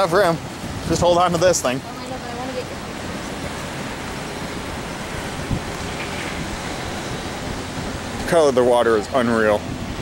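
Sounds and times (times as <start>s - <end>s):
moving water: 0.0s - 10.0s
wind: 0.0s - 10.0s.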